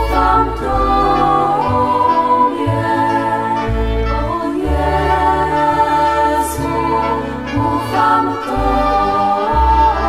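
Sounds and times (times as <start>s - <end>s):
bass line: 0.0s - 10.0s
choir holding sustained notes: 0.0s - 10.0s.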